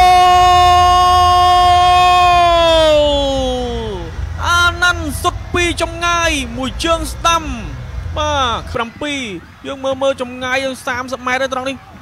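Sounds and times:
commentator's long shout: 0.0s - 9.8s.

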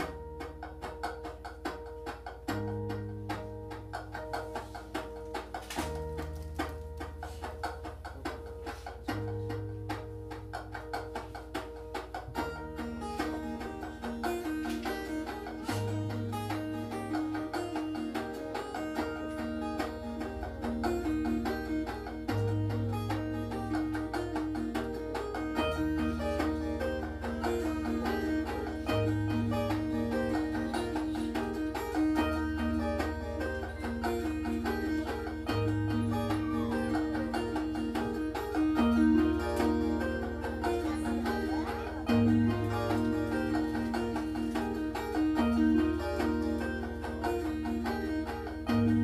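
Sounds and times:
acoustic guitar strumming chords: 0.0s - 49.0s.

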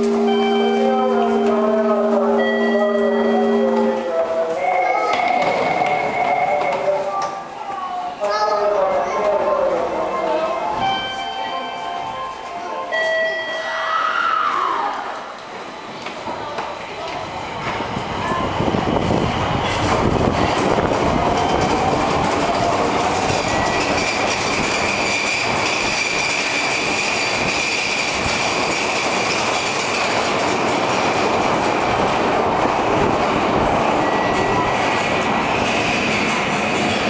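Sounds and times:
wheels clattering on rails: 4.9s - 11.3s, 15.2s - 37.0s.

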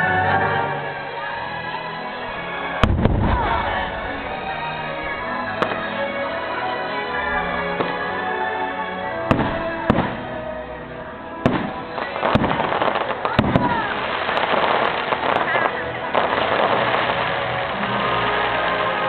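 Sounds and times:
fireworks crackling: 0.0s - 19.0s
music soundtrack: 0.0s - 19.0s
fireworks bangs: 0.3s - 6.6s, 7.7s - 8.2s, 9.2s - 10.5s, 11.4s - 19.0s.

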